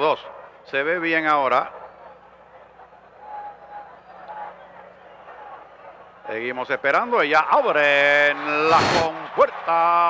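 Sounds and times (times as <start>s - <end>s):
racetrack background ambience: 0.0s - 10.0s.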